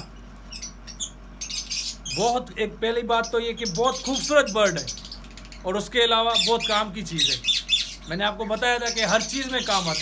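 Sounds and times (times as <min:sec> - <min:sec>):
budgerigars chirping: 0:00.0 - 0:10.0.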